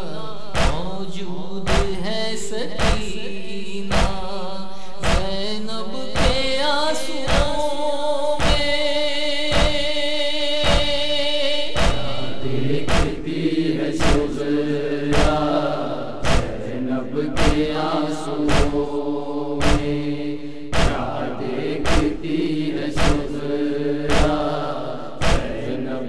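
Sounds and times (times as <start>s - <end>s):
heavy rhythmic thump: 0.0s - 26.0s
person chanting a lament: 0.0s - 26.0s.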